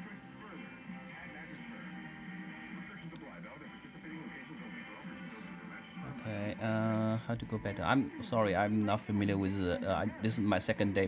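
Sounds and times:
faint music through radio speaker: 0:00.0 - 0:11.0
faint speech through radio speaker: 0:00.0 - 0:11.0.

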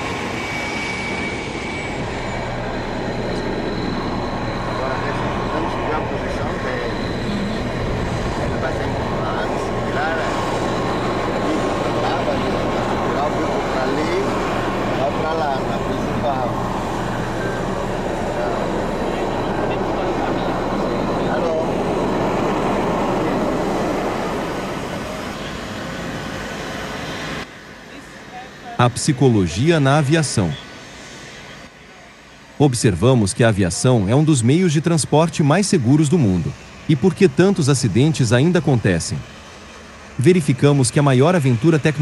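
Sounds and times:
steady mechanical hum: 0:01.7 - 0:42.0
indistinct voices: 0:02.0 - 0:25.4.

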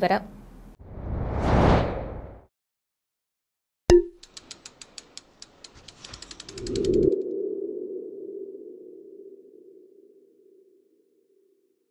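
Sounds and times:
quick clicks: 0:04.2 - 0:07.1.

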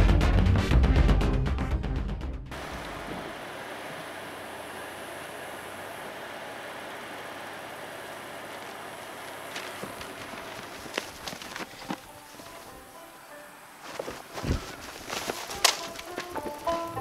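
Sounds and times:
steady outdoor hiss: 0:02.5 - 0:17.0.

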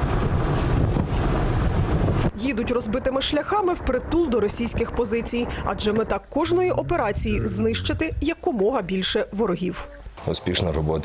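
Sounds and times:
car engine and tyres rumbling: 0:00.0 - 0:09.2.

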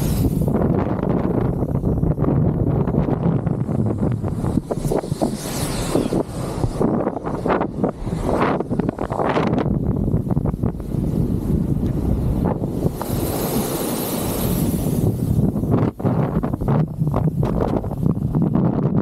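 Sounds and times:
hiss: 0:00.0 - 0:01.9, 0:04.4 - 0:09.2, 0:10.9 - 0:16.0
wind buffeting microphone: 0:00.0 - 0:19.0
tyres rolling over sand: 0:10.5 - 0:16.0.

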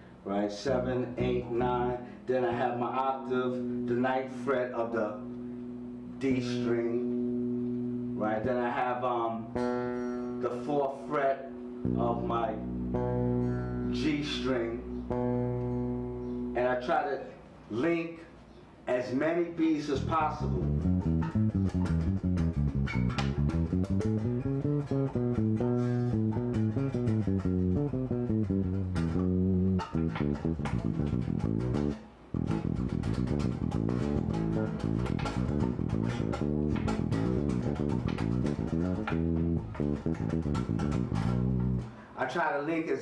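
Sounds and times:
electric bass guitar plucked notes: 0:00.0 - 0:17.0, 0:19.9 - 0:42.1.

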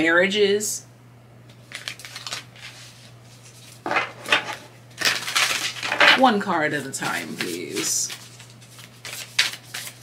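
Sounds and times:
cards shuffling: 0:01.6 - 0:03.9, 0:06.9 - 0:10.0.

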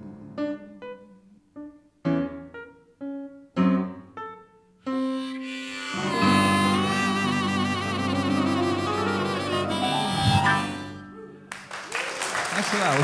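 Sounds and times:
piano playing slow blues: 0:00.0 - 0:11.7.

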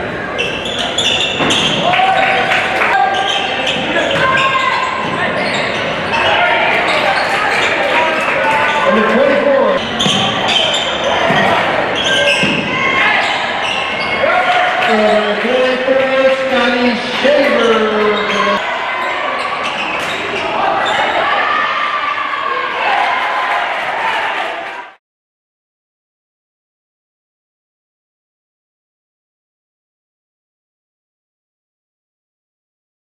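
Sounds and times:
crowd din: 0:00.0 - 0:24.9
sneaker squeaks: 0:00.3 - 0:02.4, 0:03.0 - 0:09.0, 0:09.7 - 0:14.3, 0:16.6 - 0:21.4
people shouting: 0:11.0 - 0:15.1.

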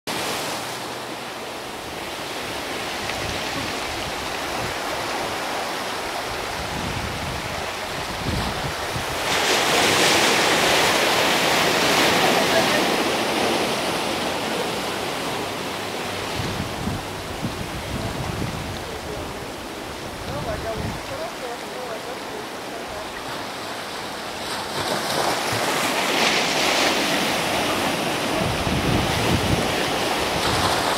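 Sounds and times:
rushing wind: 0:00.1 - 0:21.5, 0:22.5 - 0:30.9
sea surf: 0:00.1 - 0:30.9
wind buffeting microphone: 0:02.5 - 0:14.2, 0:15.4 - 0:21.5, 0:24.7 - 0:30.9.

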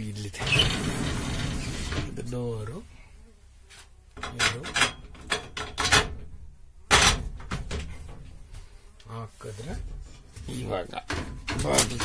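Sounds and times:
sheet metal door knocks and rattles: 0:04.2 - 0:08.1, 0:11.0 - 0:12.0.

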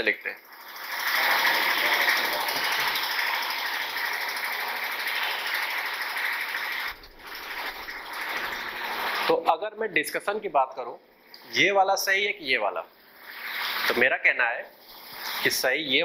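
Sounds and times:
marker scratching on whiteboard: 0:13.2 - 0:14.0.

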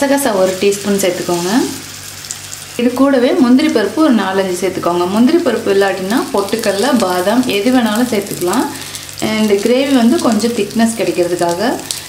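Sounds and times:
spices sizzling in a pan: 0:00.0 - 0:12.0
person talking: 0:02.8 - 0:11.8.

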